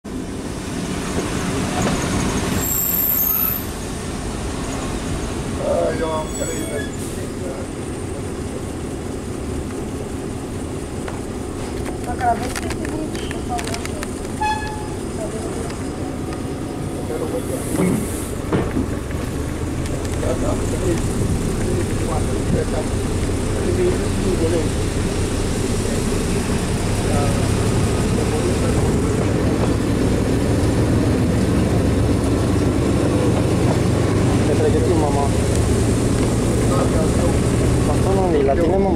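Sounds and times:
train wheels rumbling: 0.1s - 38.9s.

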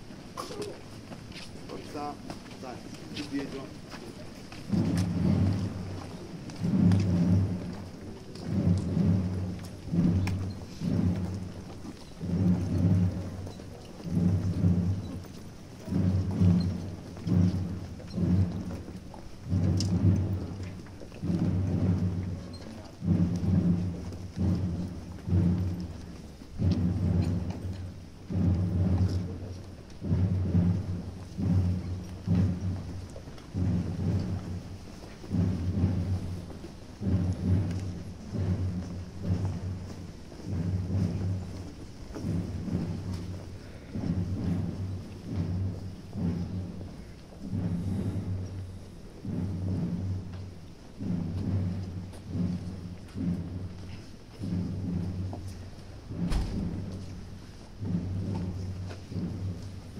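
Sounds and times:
muffled drum beating: 0.0s - 59.9s.

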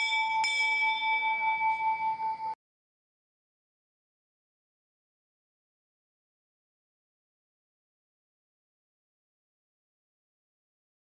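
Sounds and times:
metal bell ringing: 0.0s - 2.6s.

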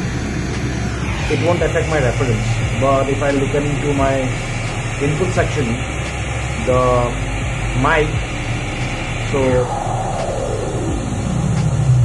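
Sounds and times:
pink noise hiss with low rumble: 0.0s - 12.0s.

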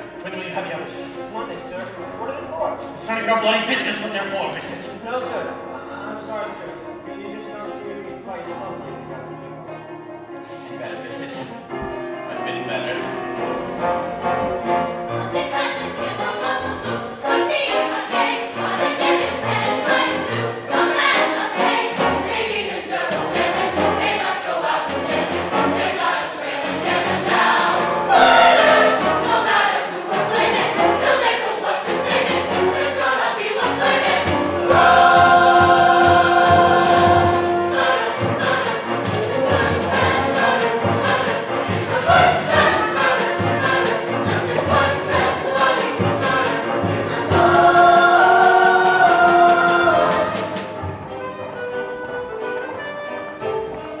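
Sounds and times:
chorus singing with orchestra: 0.0s - 54.0s.

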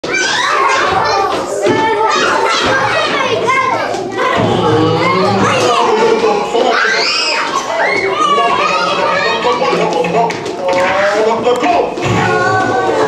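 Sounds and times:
children shouting and chattering: 0.0s - 13.0s.

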